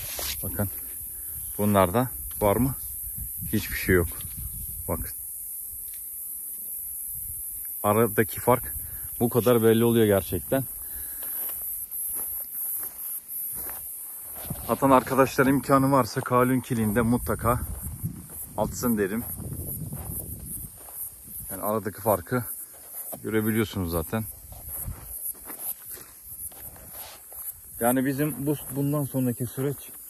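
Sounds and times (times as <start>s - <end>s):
footsteps on loose soil: 0.0s - 2.7s, 9.1s - 30.0s
high-pitched hiss: 0.0s - 30.0s
insect chorus: 0.0s - 30.0s.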